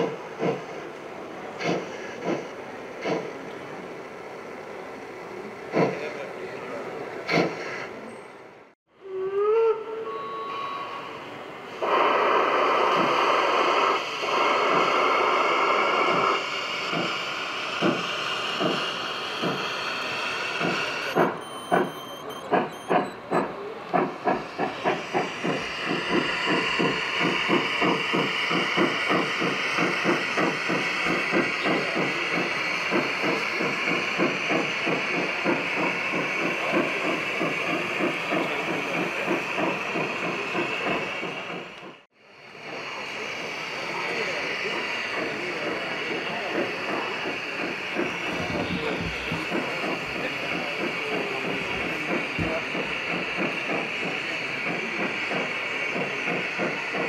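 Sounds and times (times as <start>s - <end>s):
steam hissing: 0.0s - 8.1s, 10.6s - 21.9s, 22.5s - 57.0s
steam locomotive chuffing: 0.0s - 57.0s.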